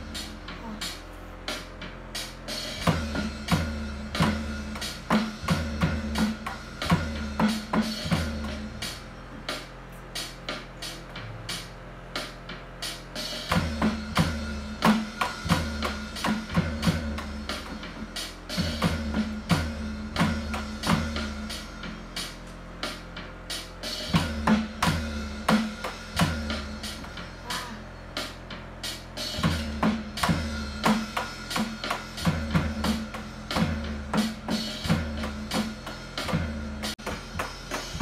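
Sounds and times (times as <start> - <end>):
band music: 0.0 - 38.0
electronic drum and cymbal hits: 0.0 - 38.0.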